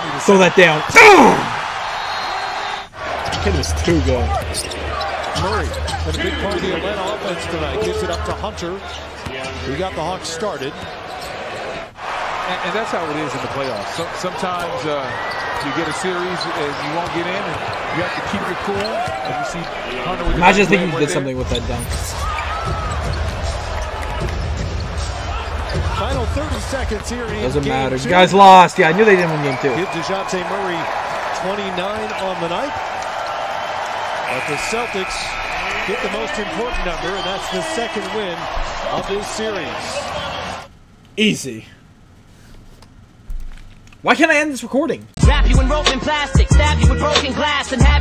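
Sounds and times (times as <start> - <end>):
basketball and players on court: 0.0 - 41.0.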